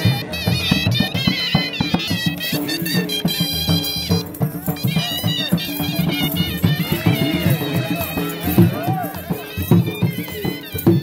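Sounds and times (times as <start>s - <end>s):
drum beating folk rhythm: 0.0s - 11.0s
reed pipe wailing melody: 0.0s - 11.0s.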